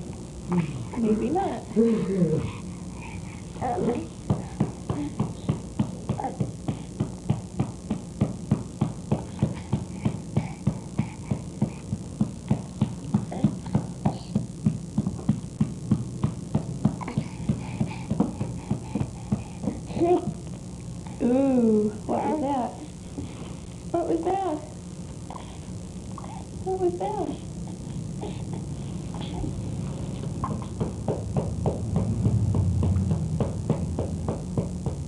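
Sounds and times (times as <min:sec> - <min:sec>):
rapid tapping: 0:04.2 - 0:20.5
baby whimpering: 0:26.2 - 0:26.6, 0:27.4 - 0:29.6.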